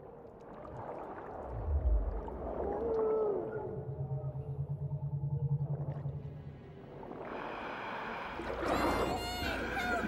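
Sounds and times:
low pulsing hum: 1.5s - 7.3s.

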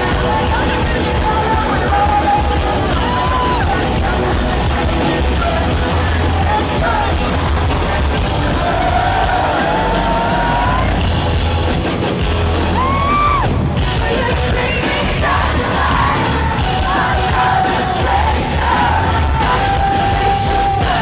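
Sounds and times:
person singing: 0.0s - 11.0s, 12.8s - 21.0s
fans yelling and whooping: 0.0s - 11.3s, 12.5s - 21.0s
rock band playing live: 0.0s - 21.0s.

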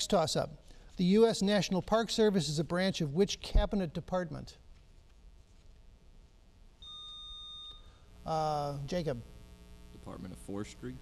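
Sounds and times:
high-pitched electronic buzzer beep: 6.8s - 10.9s.

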